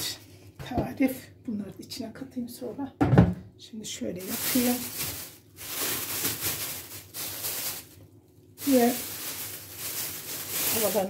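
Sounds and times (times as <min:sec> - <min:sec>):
plastic bag rustling: 0:04.2 - 0:11.0.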